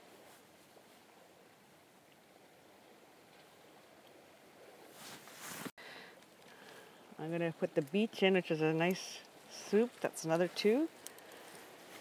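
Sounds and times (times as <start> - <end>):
faint outdoor background hiss: 0.0 - 12.0.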